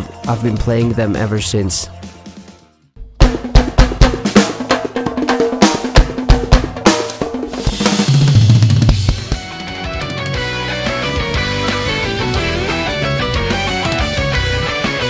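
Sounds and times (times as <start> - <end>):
drum kit played with sticks: 2.3 - 15.0.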